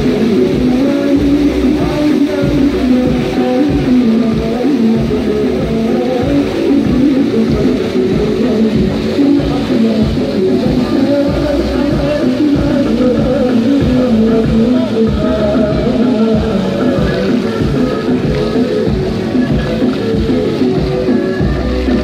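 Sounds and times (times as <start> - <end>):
guitar music: 0.0 - 22.0.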